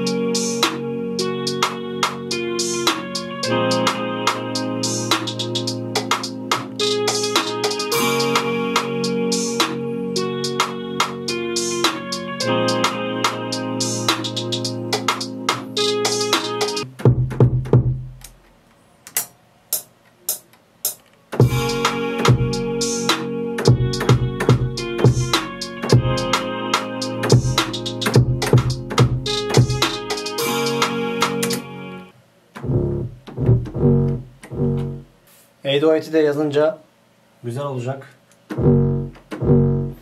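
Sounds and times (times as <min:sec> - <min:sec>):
trap beat melody with hi-hats: 0:00.0 - 0:18.4, 0:19.2 - 0:32.0
percussion clicks: 0:14.2 - 0:21.4.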